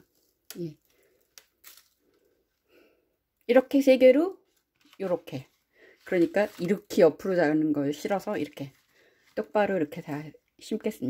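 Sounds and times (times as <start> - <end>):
plant stem crackling: 0.0 - 2.6, 4.4 - 10.1.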